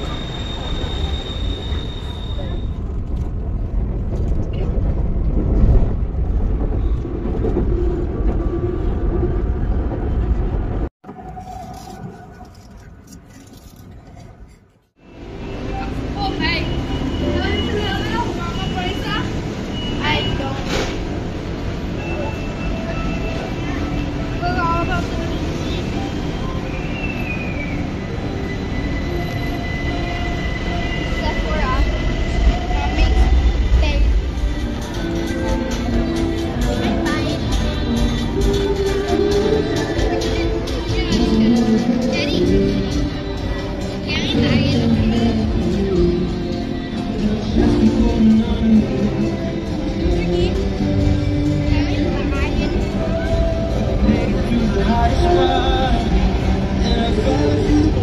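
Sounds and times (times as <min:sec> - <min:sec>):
electric train rumbling: 0:00.0 - 0:58.0.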